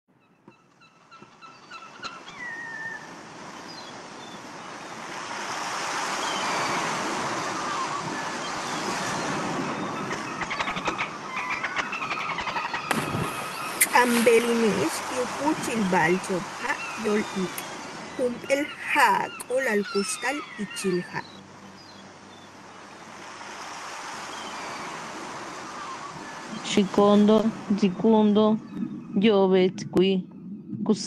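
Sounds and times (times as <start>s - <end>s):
ocean surf: 1.4s - 27.9s
short bird calls: 6.1s - 14.8s
falling bird call: 6.1s - 21.3s.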